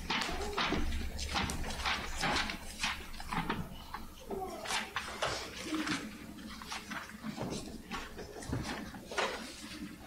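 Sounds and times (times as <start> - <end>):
book pages turning: 0.0 - 10.0.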